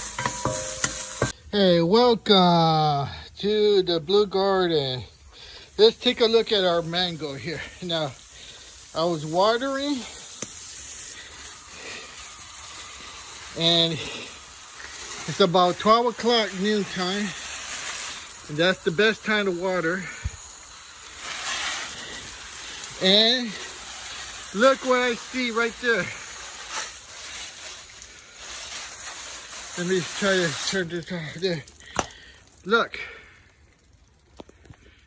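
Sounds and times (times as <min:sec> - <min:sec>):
garden hose spraying water: 0:00.0 - 0:35.0.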